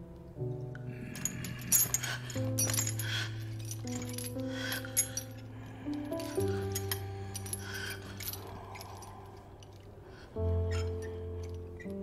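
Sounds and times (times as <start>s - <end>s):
metal chain rattling: 1.0s - 9.9s.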